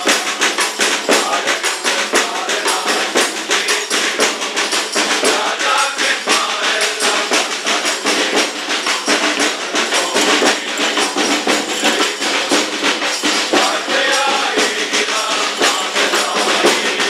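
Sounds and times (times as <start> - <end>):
bass drum beat: 0.0 - 17.0
carolers singing: 0.0 - 17.0
jingling shaken percussion: 0.0 - 17.0
snare drum: 0.0 - 17.0.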